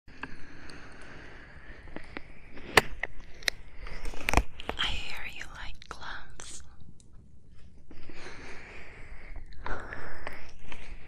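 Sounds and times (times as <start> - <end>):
close whispering: 3.8 - 6.8, 7.9 - 11.0.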